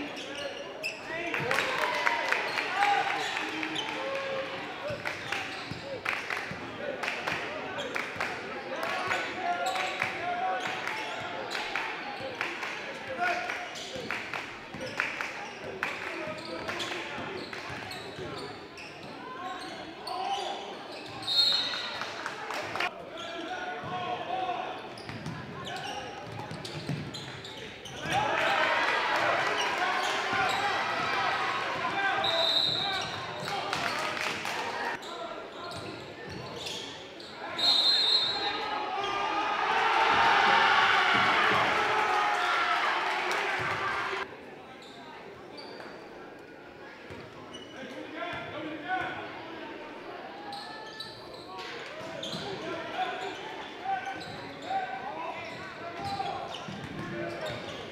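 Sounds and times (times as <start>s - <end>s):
sneakers squeaking: 0.0s - 1.6s, 4.8s - 6.0s, 13.6s - 22.2s, 24.7s - 28.8s, 29.5s - 34.2s, 34.9s - 39.2s, 44.8s - 46.0s, 47.1s - 48.0s, 50.4s - 57.9s
spectators' voices: 0.0s - 57.9s
crowd cheering loudly: 1.3s - 4.3s, 28.0s - 32.8s, 38.4s - 44.3s.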